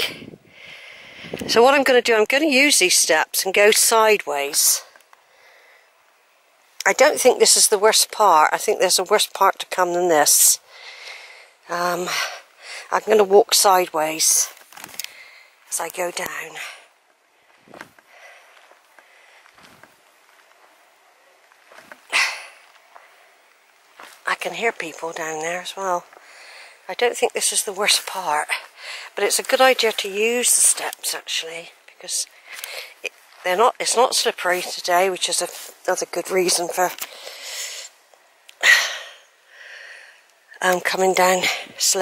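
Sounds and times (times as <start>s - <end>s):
footsteps on earth steps: 17.4s - 26.4s.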